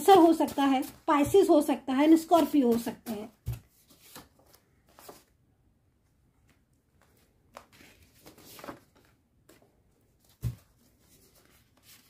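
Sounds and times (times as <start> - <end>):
paper rustling: 0.0 - 5.3, 6.4 - 12.0.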